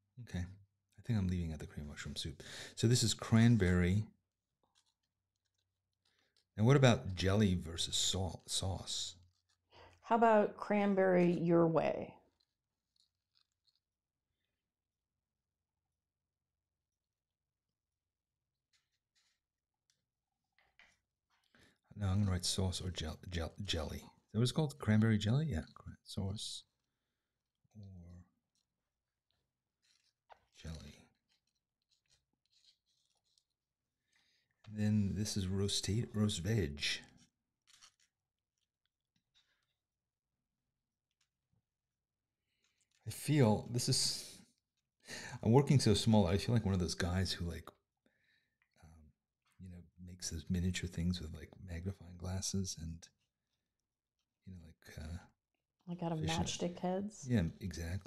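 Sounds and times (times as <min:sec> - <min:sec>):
pen scratching on paper: 0:31.3 - 0:33.5.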